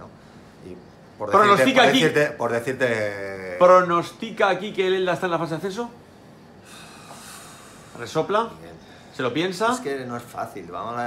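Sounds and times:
man exhaling through lips: 6.6 - 8.0.

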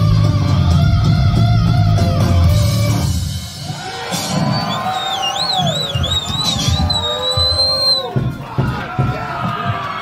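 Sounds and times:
drums: 0.0 - 10.0.

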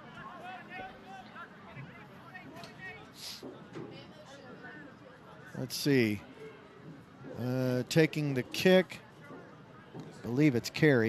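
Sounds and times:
spectators talking: 0.0 - 11.0.

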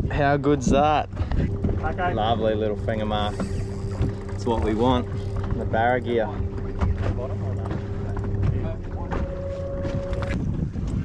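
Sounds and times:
low steady hum: 0.0 - 11.0
wind on microphone: 0.0 - 11.0
higher steady tone: 0.9 - 10.6
faint voices: 1.3 - 10.3.

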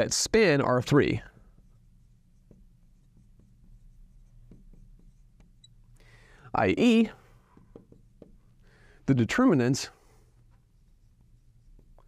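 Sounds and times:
marker ticking and scraping on glass: 1.4 - 6.0, 10.5 - 12.0.

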